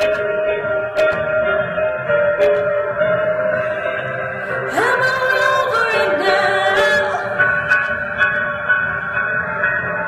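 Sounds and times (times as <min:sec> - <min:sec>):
soft instrumental backing: 0:00.0 - 0:10.0.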